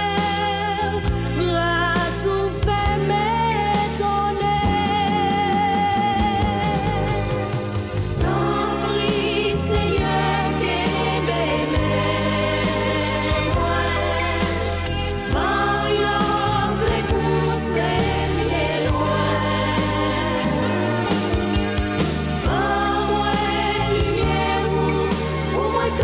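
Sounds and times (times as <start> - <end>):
band with bass and percussion: 0.0 - 26.0
voices singing together: 0.0 - 26.0.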